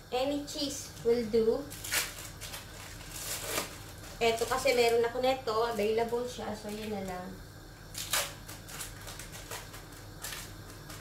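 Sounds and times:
plastic wrapping crinkling: 1.0 - 7.3, 7.9 - 11.0.

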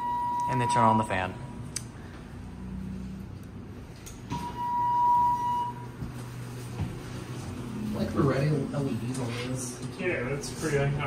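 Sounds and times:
elevator high beep: 0.0 - 1.4, 4.3 - 6.0.

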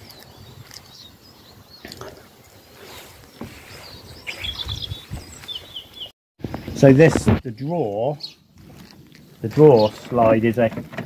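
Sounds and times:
small birds chirping: 0.0 - 10.8.

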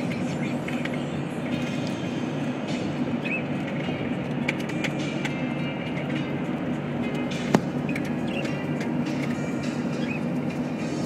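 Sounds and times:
road and engine rumble in vehicle: 0.0 - 11.0.

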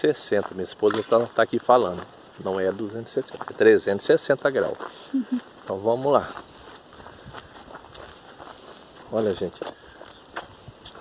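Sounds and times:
footsteps on dry dirt: 0.0 - 11.0.

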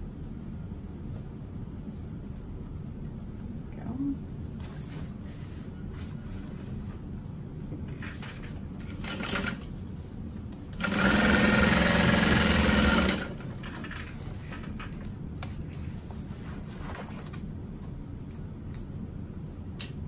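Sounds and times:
sewing machine stitching: 10.8 - 13.5.

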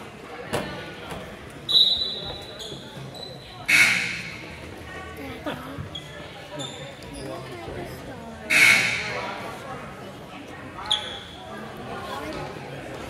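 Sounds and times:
murmur of spectators: 0.0 - 13.0
shoe squeaks: 1.7 - 4.2, 5.9 - 7.5, 10.8 - 11.4.

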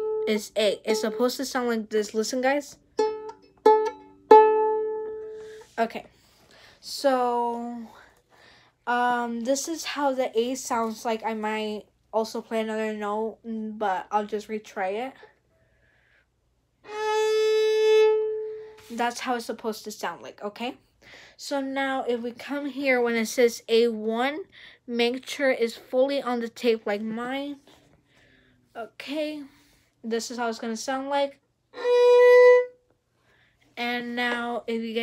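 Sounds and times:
violin string plucked pizzicato: 2.8 - 5.8, 31.8 - 32.8
violin open string bowed note: 16.8 - 18.8, 31.8 - 32.8.

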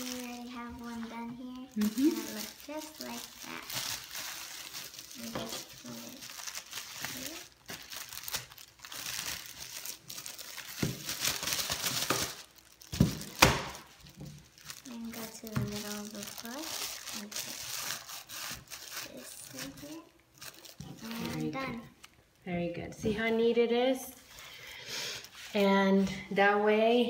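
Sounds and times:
plastic bag crinkling: 0.0 - 21.8.

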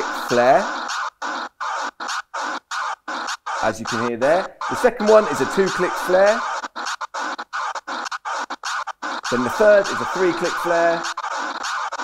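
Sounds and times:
dj scratch sample bursts: 0.0 - 12.0.

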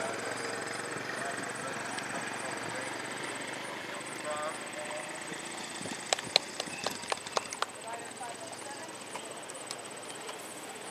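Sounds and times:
horse hoofbeats at a walk: 5.8 - 7.7.

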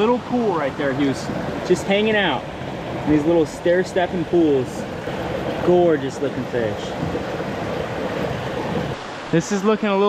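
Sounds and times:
stream water running over rocks: 0.0 - 10.0.

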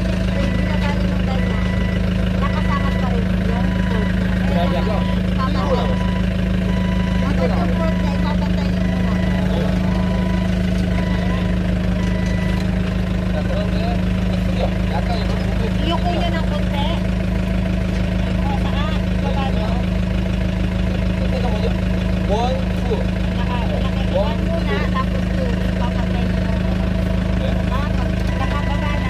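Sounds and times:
short beeper tones: 0.0 - 17.4, 23.0 - 29.0
forklift engine idling: 0.0 - 29.0.

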